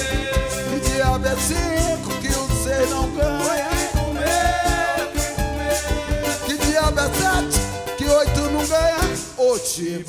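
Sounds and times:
cavaquinho: 0:00.0 - 0:09.8
drum kit: 0:00.0 - 0:09.8
acoustic guitar: 0:00.0 - 0:10.0.

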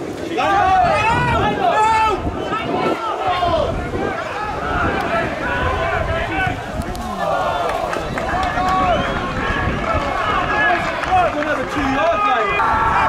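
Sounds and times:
voices shouting and calling: 0:00.0 - 0:13.0.

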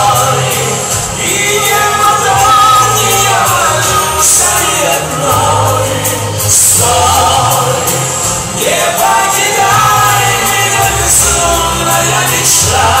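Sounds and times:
amplified live ballad music: 0:00.0 - 0:13.0
choir-like voices: 0:00.0 - 0:13.0
steady bass line: 0:00.0 - 0:13.0.

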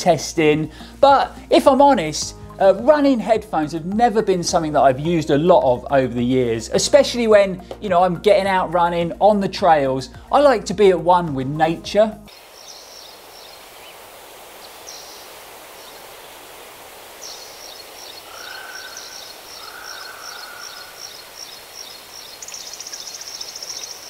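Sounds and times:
steady outdoor hiss: 0:00.0 - 0:24.0
lower bird calls: 0:12.3 - 0:24.0
small birds chirping: 0:12.3 - 0:24.0.

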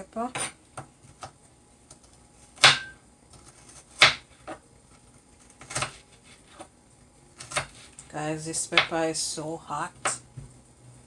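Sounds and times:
knife chopping on cutting board: 0:02.6 - 0:04.6, 0:05.6 - 0:06.7, 0:07.4 - 0:07.9.

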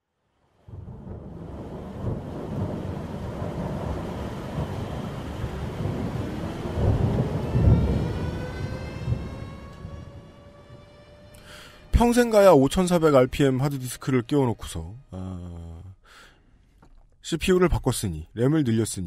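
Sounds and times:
deep thunder-like rumble: 0:00.7 - 0:10.9.

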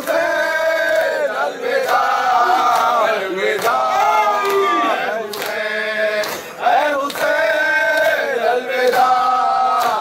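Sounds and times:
group chanting in chorus: 0:00.0 - 0:10.0
men chanting a lament: 0:00.0 - 0:10.0.

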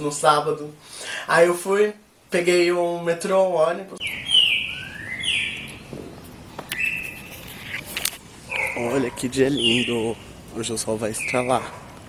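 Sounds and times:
bird calling: 0:04.0 - 0:12.0.

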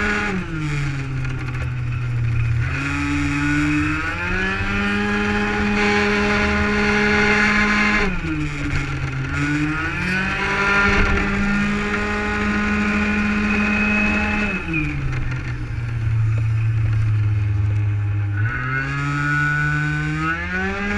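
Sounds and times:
two-stroke scooter engine revving: 0:00.0 - 0:20.9.

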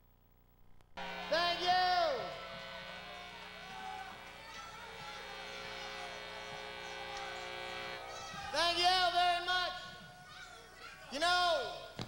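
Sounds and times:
steady electrical hum: 0:00.0 - 0:12.0
man calling out: 0:01.3 - 0:02.4, 0:08.5 - 0:10.0, 0:11.1 - 0:11.9.

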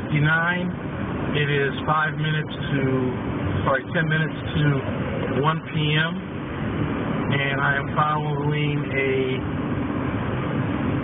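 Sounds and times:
faint low engine hum: 0:00.0 - 0:11.0
road and wind noise in car: 0:00.0 - 0:11.0.

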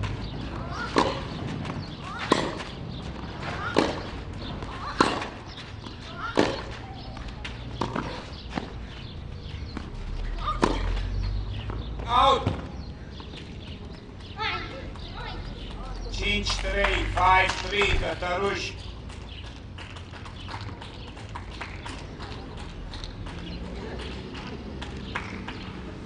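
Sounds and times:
racket hitting tennis ball: 0:00.0 - 0:09.0, 0:09.8 - 0:11.1
tennis ball bouncing: 0:00.0 - 0:13.4.

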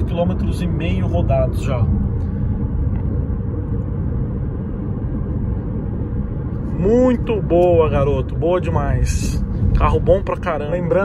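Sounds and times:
tyres rumbling on road: 0:00.0 - 0:11.0.

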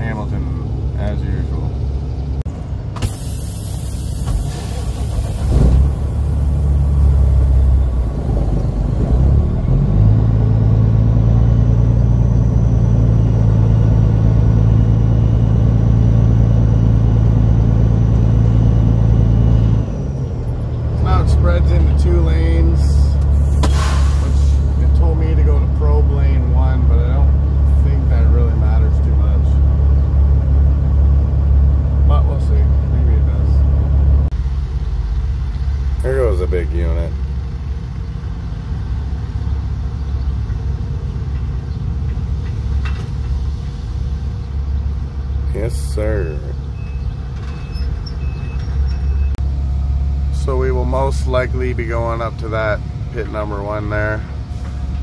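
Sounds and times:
diesel truck engine droning: 0:00.0 - 0:55.0
air hiss: 0:03.0 - 0:05.5, 0:23.3 - 0:24.8.

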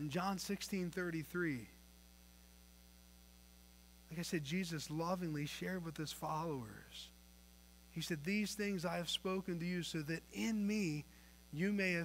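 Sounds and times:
man speaking: 0:00.0 - 0:01.8, 0:04.1 - 0:07.1, 0:08.0 - 0:12.0
electrical mains hum: 0:00.0 - 0:12.0.

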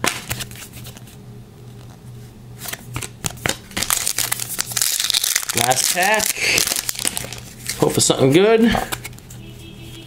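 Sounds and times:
foil card pack rustling: 0:02.6 - 0:08.3.

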